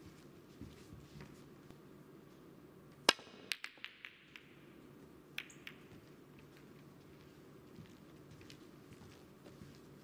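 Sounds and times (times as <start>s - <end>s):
snooker balls clicking: 3.0s - 6.8s.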